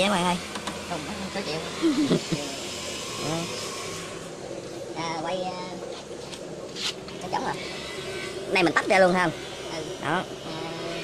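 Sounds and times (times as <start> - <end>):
fish tank pumps whirring: 0.0 - 11.0.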